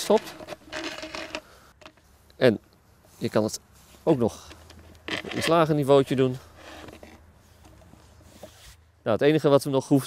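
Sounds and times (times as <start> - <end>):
plastic bottle handling noise: 0.0 - 2.1, 3.9 - 5.7.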